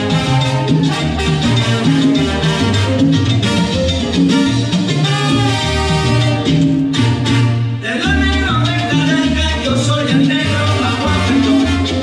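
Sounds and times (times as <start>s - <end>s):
salsa music over loudspeakers: 0.0s - 12.0s.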